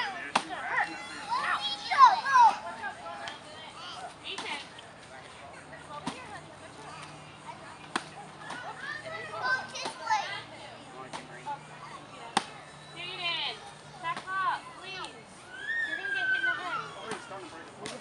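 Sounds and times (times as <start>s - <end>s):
young children shrieking: 15.4s - 17.5s.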